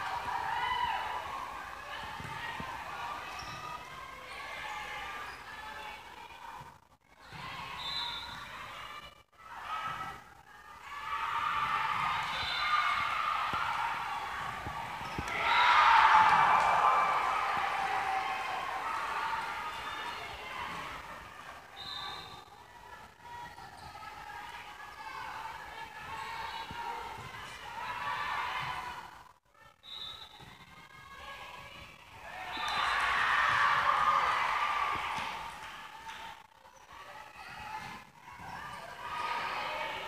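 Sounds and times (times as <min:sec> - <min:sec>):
crowd cheering and yelling: 0:00.0 - 0:03.3, 0:10.8 - 0:21.8, 0:32.2 - 0:36.4.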